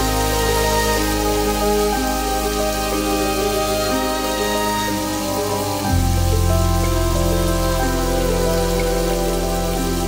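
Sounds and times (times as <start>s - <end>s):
background music: 0.0s - 10.0s
mushrooms sizzling in a pan: 0.0s - 10.0s.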